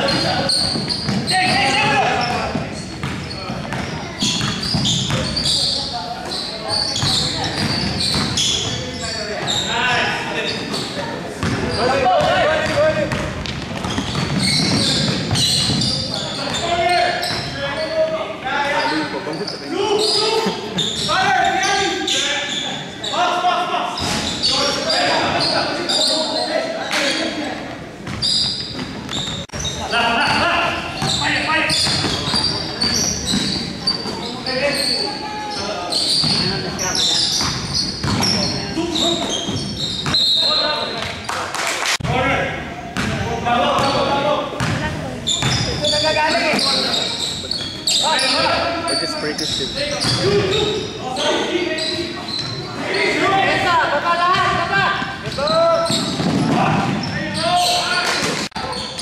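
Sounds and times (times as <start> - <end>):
indistinct shouting and voices: 0.0 - 59.0.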